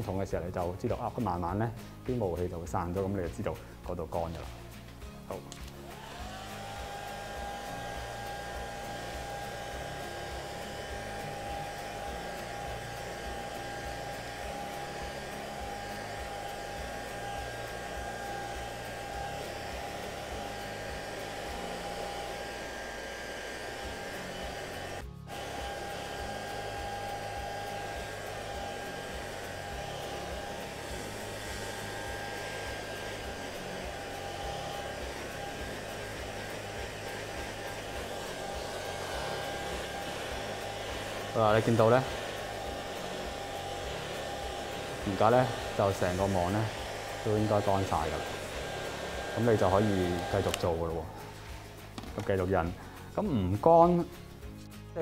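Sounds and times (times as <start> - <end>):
hair dryer blowing: 2.8 - 53.0.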